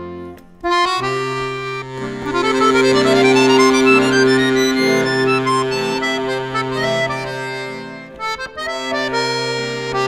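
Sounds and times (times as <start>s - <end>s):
button accordion playing: 0.0s - 10.0s.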